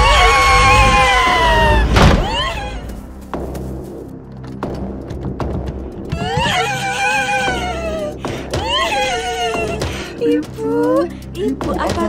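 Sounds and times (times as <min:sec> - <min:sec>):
eerie low music drone: 0:00.0 - 0:12.0.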